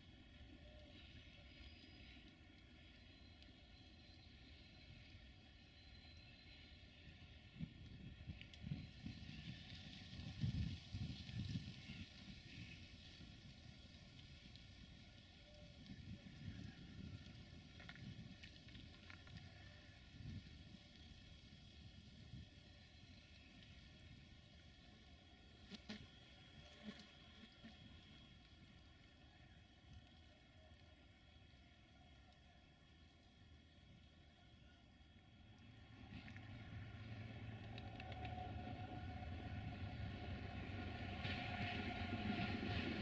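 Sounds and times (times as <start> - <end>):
wind buffeting microphone: 7.6 - 12.8.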